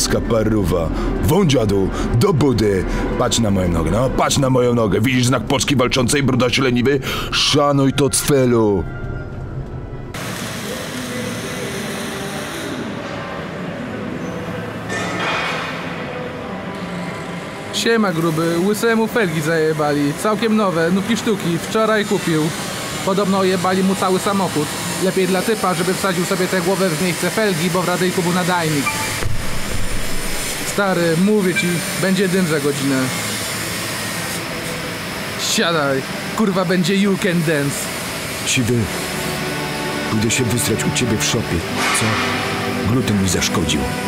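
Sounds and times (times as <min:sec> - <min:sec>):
faint voices: 0:10.2 - 0:14.9.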